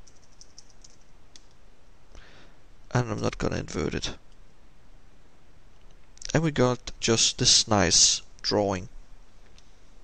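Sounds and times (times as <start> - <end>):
keyboard and mouse clicks: 0.0 - 1.6.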